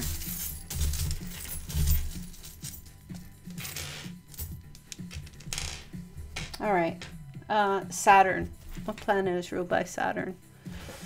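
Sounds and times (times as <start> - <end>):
background music with low beat: 0.0 - 11.0.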